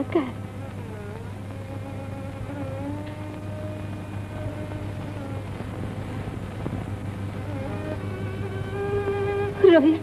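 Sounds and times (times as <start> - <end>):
faint held score notes: 0.0 - 10.0
film soundtrack hum and hiss: 0.0 - 10.0.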